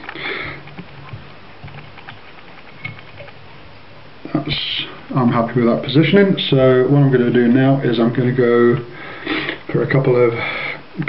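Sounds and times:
small clicks and handling noises: 0:00.0 - 0:03.4
low steady hum: 0:00.0 - 0:11.0.

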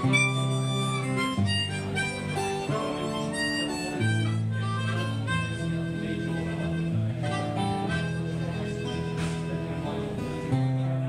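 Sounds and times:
blues harmonica: 0:00.0 - 0:11.0
strummed acoustic guitar: 0:00.0 - 0:11.0.

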